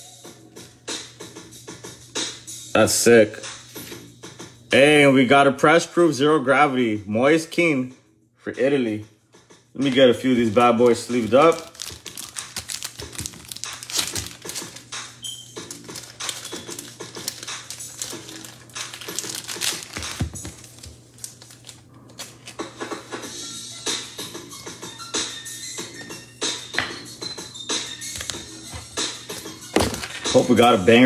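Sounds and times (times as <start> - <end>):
quiet background music: 0.0 - 31.0
plastic sleeves crinkling: 9.8 - 22.9.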